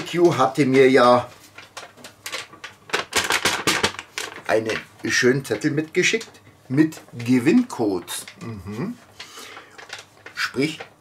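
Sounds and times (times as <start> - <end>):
paper crackling and rustling: 0.0 - 11.0.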